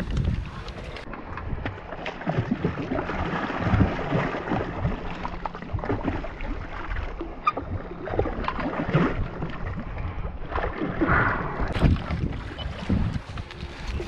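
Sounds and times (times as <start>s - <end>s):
fish splashing in water: 1.7s - 14.0s.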